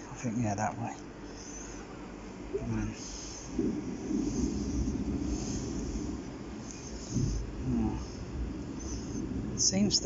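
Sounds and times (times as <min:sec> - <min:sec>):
low steady rumble: 0:00.0 - 0:10.0.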